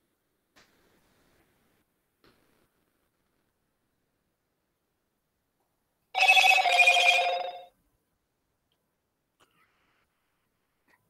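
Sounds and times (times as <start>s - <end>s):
electronic ringing tone: 6.2s - 7.7s.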